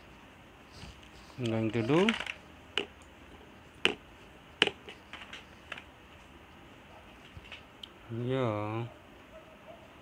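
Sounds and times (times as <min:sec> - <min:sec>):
paintbrush tapping a palette: 0:04.6 - 0:05.0.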